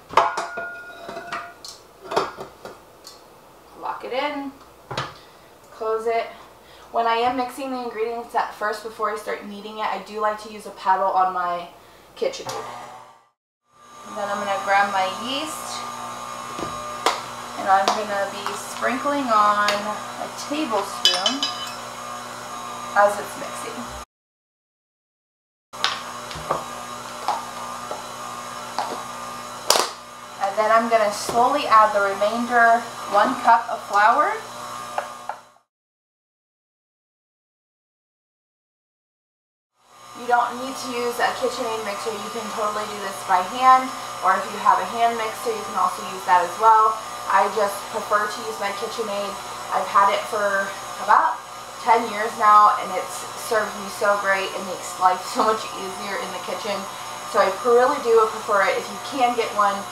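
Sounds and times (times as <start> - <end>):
metal bowl clanking: 0.1 - 1.6, 20.9 - 21.9
stand mixer motor whirring: 12.5 - 13.2, 13.8 - 24.0, 25.8 - 35.6, 39.8 - 59.9.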